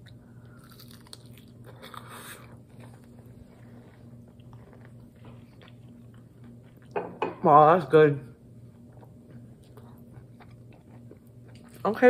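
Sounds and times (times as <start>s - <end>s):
crunching and chewing: 0.0s - 7.0s, 8.6s - 12.0s.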